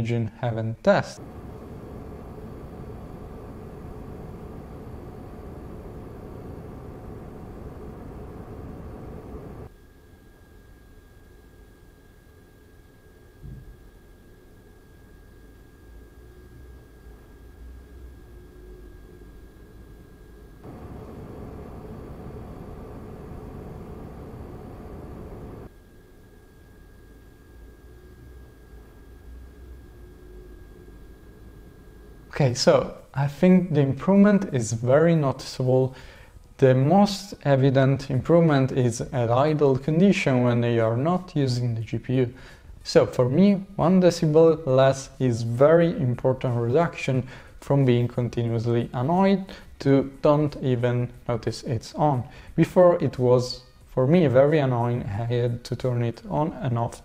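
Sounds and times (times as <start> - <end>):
cooling fans rushing: 1.2 - 9.7, 19.7 - 25.7
faint steady high tone: 20.6 - 25.7.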